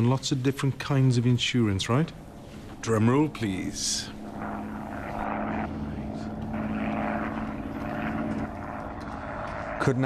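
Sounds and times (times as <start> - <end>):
propeller plane engine droning: 0.0 - 10.0.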